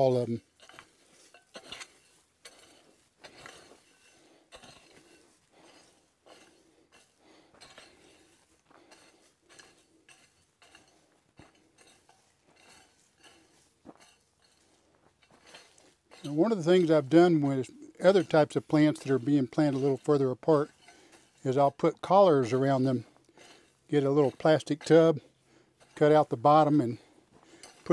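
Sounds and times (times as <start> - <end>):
hoe scraping stony soil: 0.0 - 27.9.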